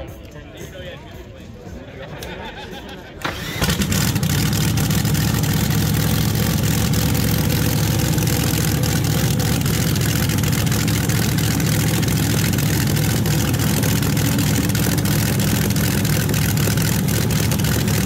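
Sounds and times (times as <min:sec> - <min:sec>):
dragster engine starting and idling: 0:03.2 - 0:18.0.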